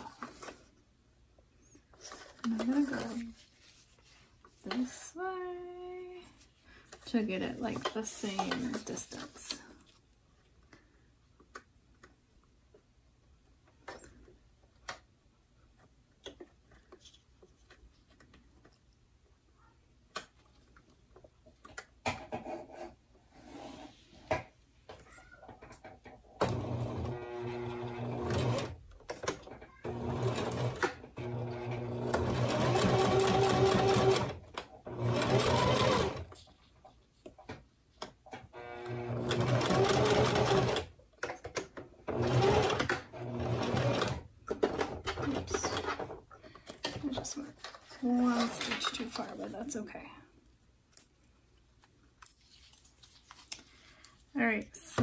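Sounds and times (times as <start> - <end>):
sewing machine stitching: 26.4 - 36.4, 38.6 - 40.9, 42.0 - 46.1.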